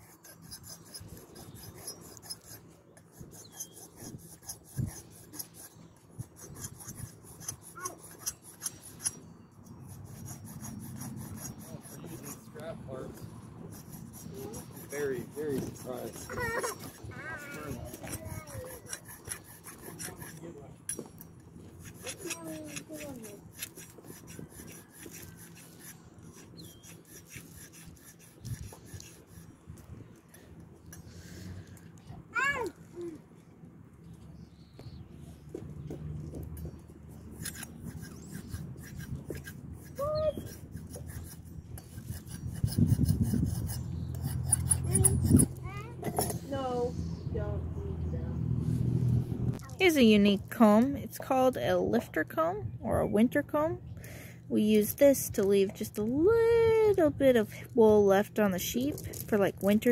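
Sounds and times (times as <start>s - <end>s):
sharpening stone rubbing on steel: 0.0s - 21.0s, 21.8s - 29.5s, 37.2s - 46.4s.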